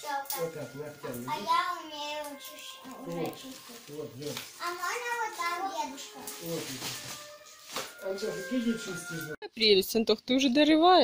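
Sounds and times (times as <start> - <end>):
child speaking in a sing-song way: 0.0 - 0.4, 1.2 - 3.9, 4.6 - 6.4
adult speaking: 0.3 - 1.9, 2.8 - 4.5.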